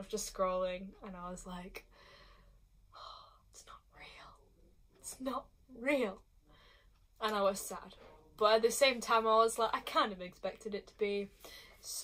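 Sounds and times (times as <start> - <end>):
woman whispering: 3.0 - 4.8.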